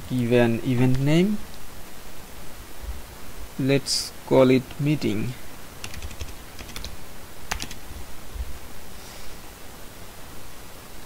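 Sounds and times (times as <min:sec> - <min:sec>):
keyboard keystrokes: 0:05.8 - 0:07.8.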